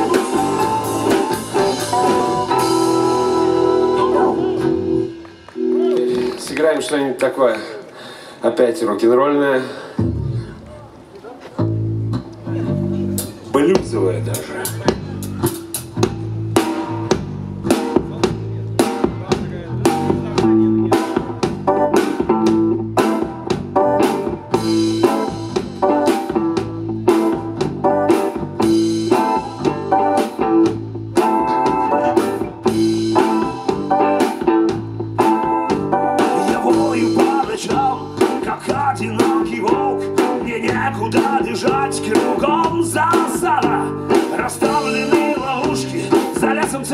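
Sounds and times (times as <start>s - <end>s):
electric bass: 0.0s - 6.4s, 11.6s - 46.9s
drum kit: 0.0s - 6.6s, 11.6s - 46.9s
electric guitar: 0.0s - 6.6s, 14.3s - 46.9s
rock band playing: 0.0s - 7.2s, 11.6s - 46.9s
keyboard: 0.0s - 7.4s, 9.9s - 46.9s.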